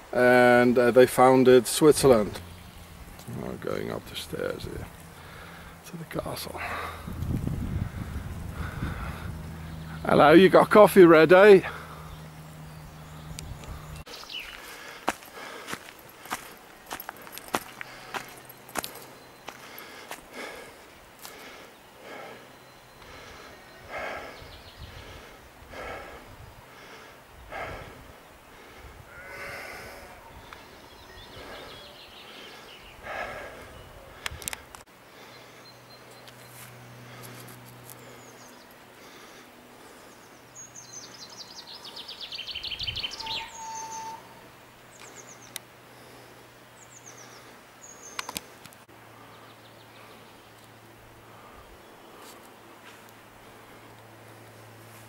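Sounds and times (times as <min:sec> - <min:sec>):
footsteps outdoors: 0:00.0 - 0:26.2, 0:30.4 - 0:44.2, 0:44.8 - 0:55.0
birds singing: 0:00.0 - 0:54.8.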